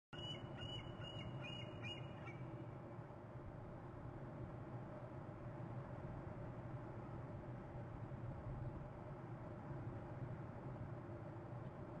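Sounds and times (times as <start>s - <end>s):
bird chirping: 0.2s - 2.5s
low background rumble: 0.2s - 12.0s.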